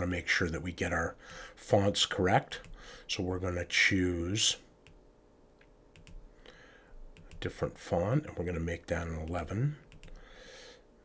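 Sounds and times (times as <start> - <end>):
computer mouse clicks: 5.6 - 6.2, 7.2 - 7.5, 9.8 - 10.2.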